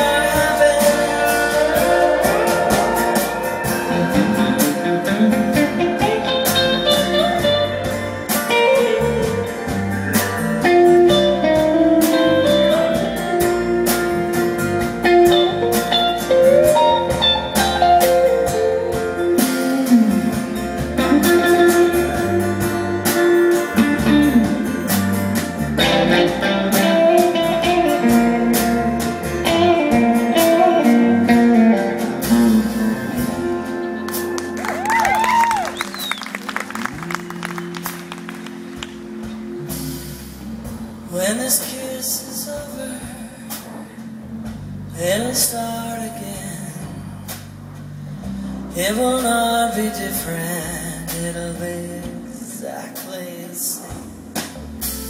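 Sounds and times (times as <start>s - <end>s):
lead guitar sliding notes: 0.0s - 40.9s
live rock band instrumental: 0.0s - 55.0s.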